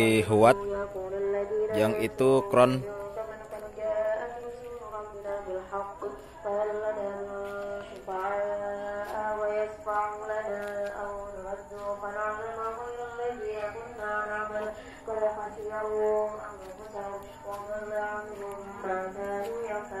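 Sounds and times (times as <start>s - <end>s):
man chanting: 0.0s - 3.2s.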